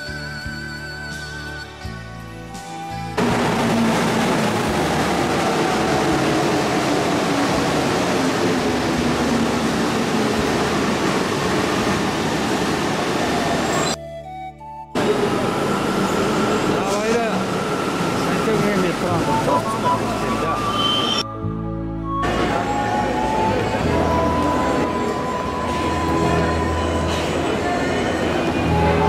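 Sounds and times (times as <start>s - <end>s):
metro train running noise: 2.7s - 14.0s, 15.0s - 21.2s, 22.0s - 29.0s
falling train whine: 3.1s - 14.0s, 15.0s - 21.2s, 22.1s - 29.0s
steady high tone: 14.9s - 29.0s
platform noise: 15.0s - 21.3s.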